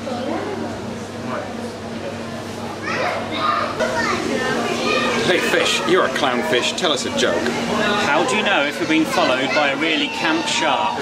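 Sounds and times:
children chattering: 1.7s - 11.0s.

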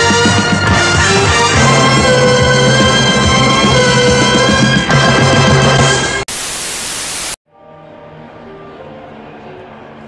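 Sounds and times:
loud white-noise static: 6.3s - 7.4s.

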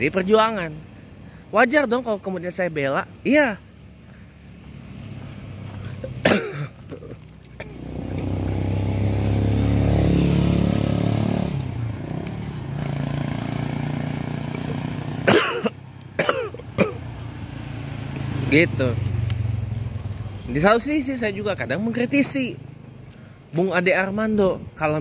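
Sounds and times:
vehicle engine and road noise: 0.0s - 25.0s
person coughing: 6.0s - 7.8s, 15.2s - 17.1s.

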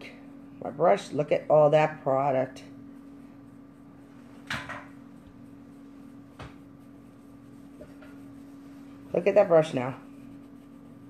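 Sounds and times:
steady low hum: 0.0s - 11.0s
brush swiping across paper: 2.9s - 11.0s.

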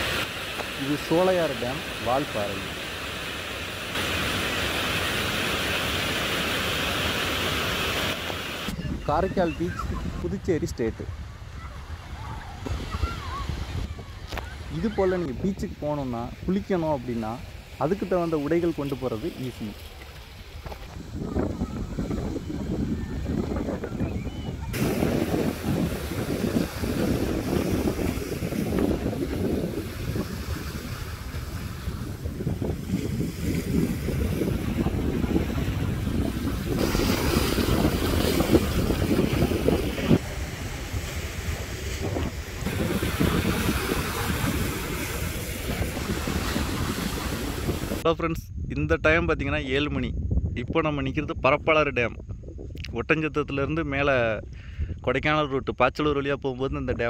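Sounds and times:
sea waves washing against rocks: 0.0s - 10.2s, 12.6s - 48.0s
wind buffeting microphone: 8.7s - 55.3s.

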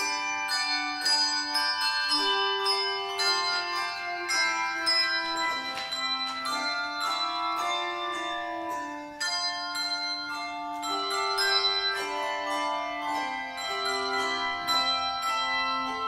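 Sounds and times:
handbell choir ringing chords: 0.0s - 16.0s.

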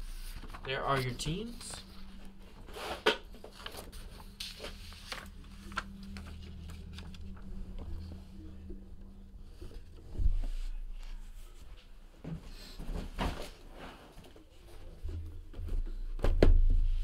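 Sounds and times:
paper rustling: 0.0s - 8.2s
low electrical hum: 0.0s - 17.0s.

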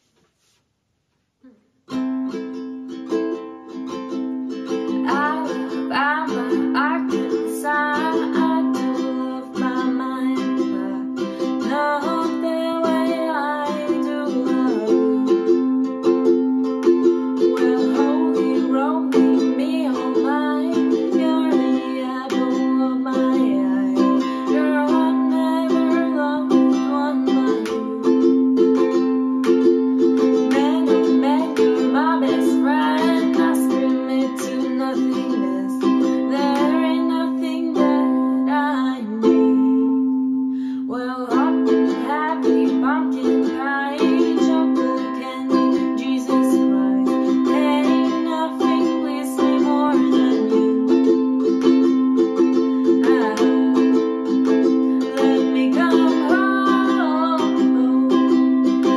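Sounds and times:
ukulele strumming chords: 1.9s - 58.9s
young woman singing: 4.7s - 16.2s, 16.9s - 29.4s, 30.0s - 58.9s.

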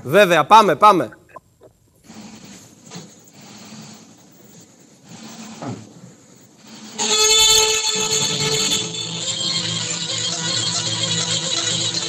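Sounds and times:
bagpipe playing reedy tune: 7.0s - 12.0s.

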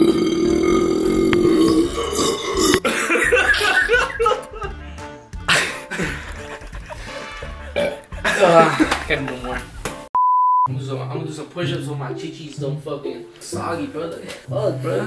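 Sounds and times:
man belching: 0.0s - 2.9s, 7.8s - 8.6s
background music: 0.0s - 10.1s, 10.7s - 15.0s.

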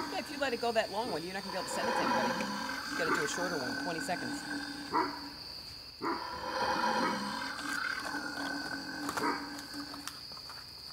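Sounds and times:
recorded monster roar through speaker: 1.4s - 5.0s.

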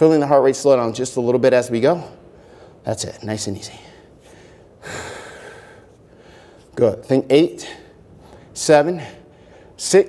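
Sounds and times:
man breathing out: 4.0s - 6.7s.

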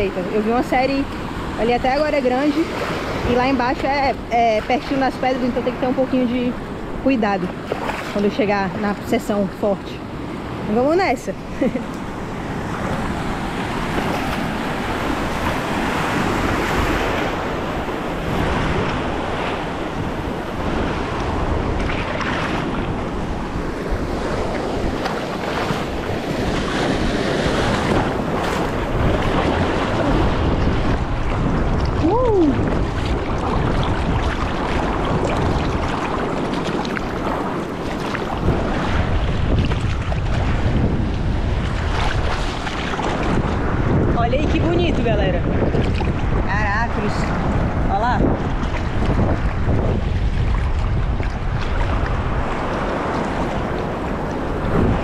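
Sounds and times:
sea water sloshing and surf: 0.0s - 55.0s.

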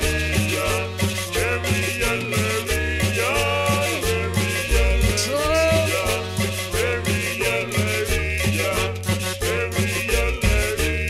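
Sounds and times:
cumbia music over sound system: 0.0s - 11.0s.

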